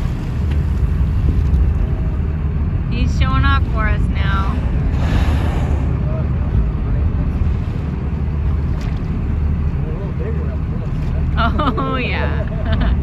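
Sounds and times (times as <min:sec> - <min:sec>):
wind on microphone: 0:00.0 - 0:09.5
boat engine running: 0:00.0 - 0:13.0.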